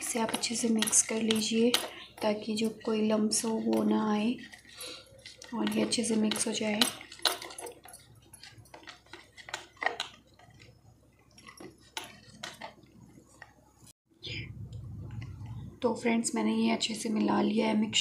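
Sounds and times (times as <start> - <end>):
plastic spoon scraping bowl: 0.0 - 10.8.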